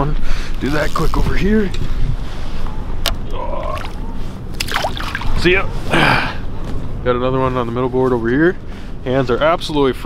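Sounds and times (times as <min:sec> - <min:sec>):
fish splashing into water: 0:04.6 - 0:05.3.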